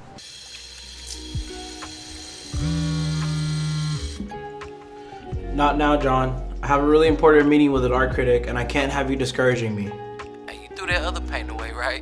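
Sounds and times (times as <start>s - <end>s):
soft background music: 0.0s - 12.0s
mobile phone vibrating: 2.6s - 4.1s.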